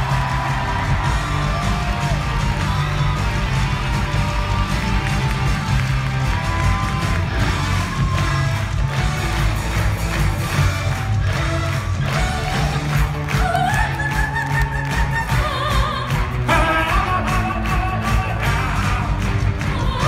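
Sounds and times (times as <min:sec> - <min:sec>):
live rock band playing: 0:00.0 - 0:13.7
audience cheering and whooping: 0:00.0 - 0:20.0.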